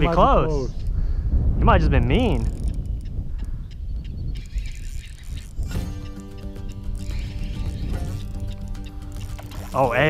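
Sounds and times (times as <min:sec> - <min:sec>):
wind buffeting microphone: 0:00.0 - 0:10.0
faint clicks: 0:02.4 - 0:03.8.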